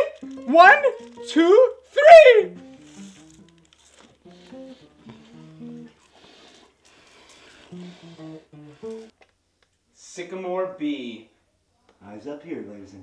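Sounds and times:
acoustic guitar plucking low notes: 0:00.1 - 0:06.0.

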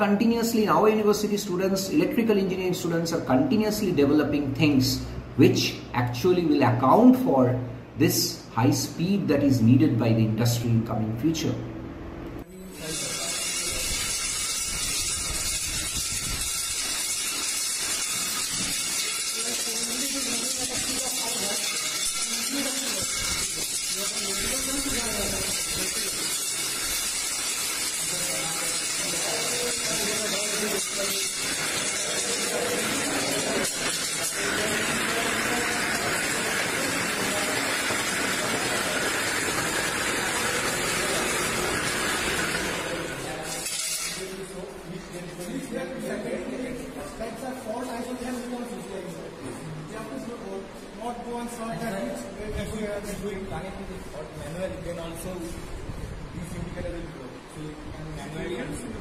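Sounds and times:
steady background hiss: 0:00.0 - 0:59.0.

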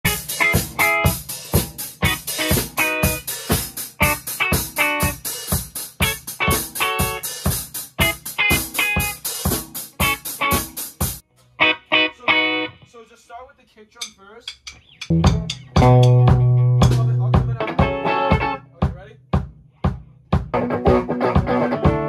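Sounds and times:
drum kit playing: 0:00.0 - 0:12.5, 0:14.0 - 0:22.0
electric guitar playing: 0:00.1 - 0:05.2, 0:05.9 - 0:07.3, 0:08.0 - 0:09.2, 0:09.9 - 0:10.8, 0:11.6 - 0:12.9, 0:14.8 - 0:18.6, 0:20.5 - 0:22.0.

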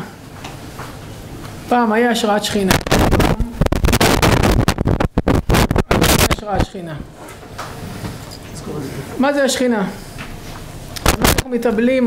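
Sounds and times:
microphone handling rubs and bumps: 0:02.6 - 0:06.7, 0:10.3 - 0:11.6.

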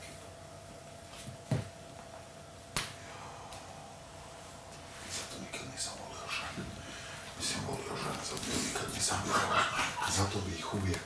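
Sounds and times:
faint high hum: 0:00.0 - 0:11.0.

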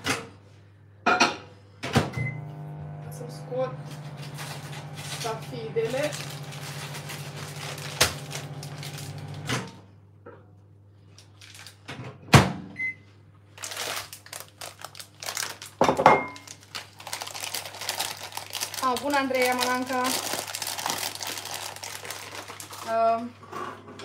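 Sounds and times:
appliance hum: 0:00.0 - 0:24.0
plastic bag crinkling: 0:03.8 - 0:09.5, 0:11.1 - 0:11.9, 0:13.5 - 0:23.4
kitchen things clattering: 0:15.8 - 0:16.8.

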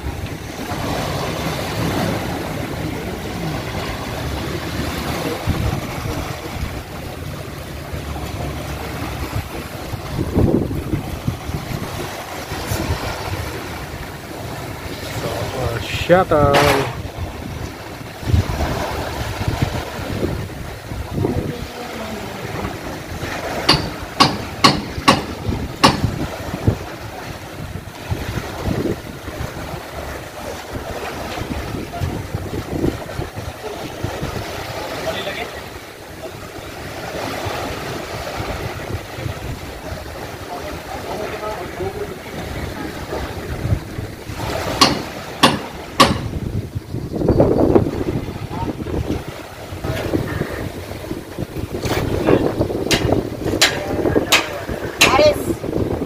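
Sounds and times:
small waves lapping on sand: 0:00.0 - 0:56.0
wind buffeting microphone: 0:00.0 - 0:56.0.

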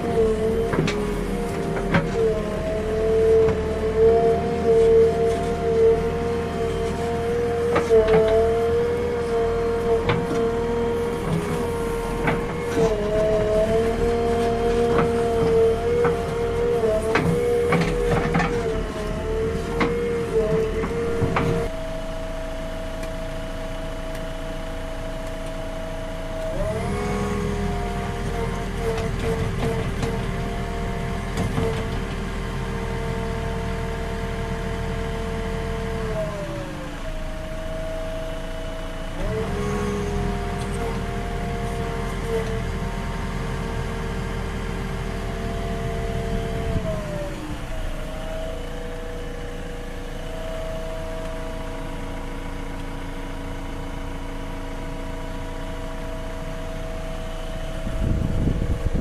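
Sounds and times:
diesel engine and hydraulics whining: 0:00.0 - 0:59.0.

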